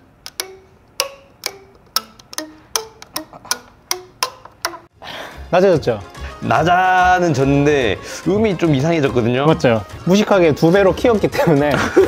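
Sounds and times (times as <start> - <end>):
plucked plastic tines ringing: 0.0 - 4.9.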